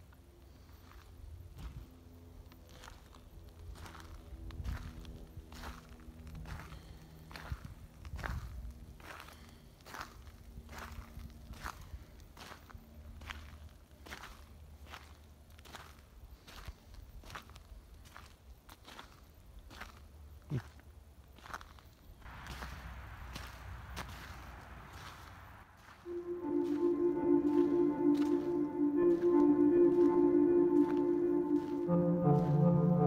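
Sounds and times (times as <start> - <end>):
footsteps on gravel: 2.6 - 33.0
footsteps on grass: 21.4 - 33.0.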